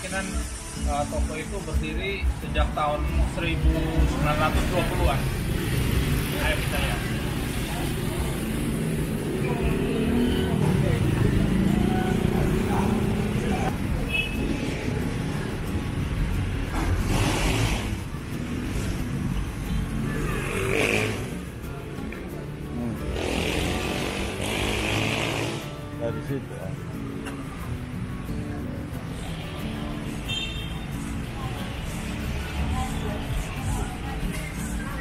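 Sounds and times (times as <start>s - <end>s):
motorbike engines passing: 2.5s - 35.0s.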